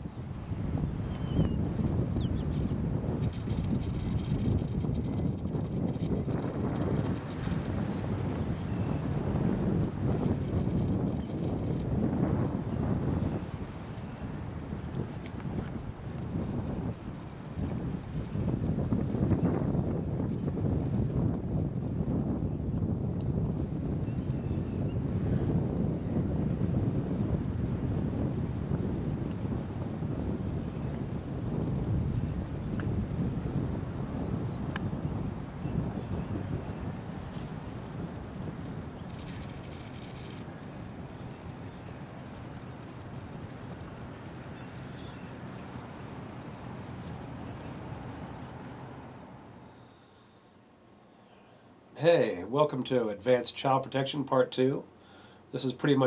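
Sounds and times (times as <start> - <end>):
wind buffeting microphone: 0.0 - 49.7.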